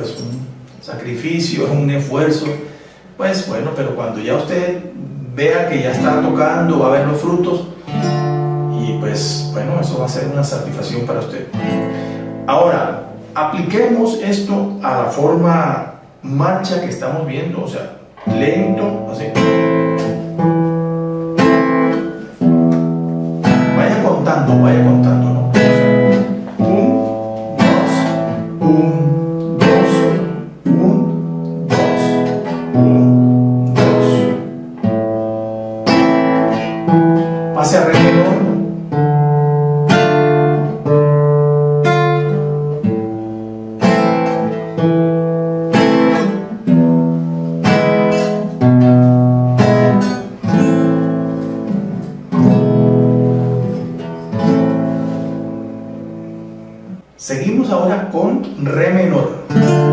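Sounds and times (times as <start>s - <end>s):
classical guitar playing: 4.8s - 14.8s, 18.0s - 57.2s, 58.4s - 59.9s.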